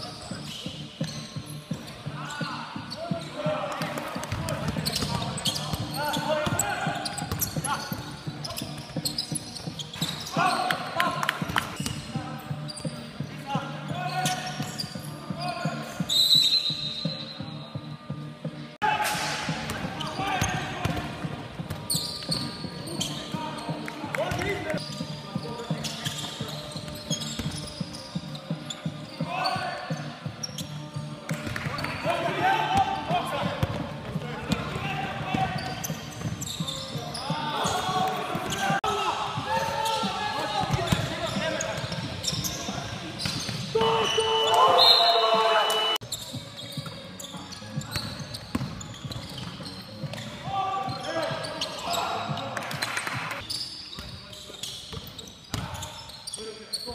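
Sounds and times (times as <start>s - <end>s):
players shouting: 43.7s - 46.0s.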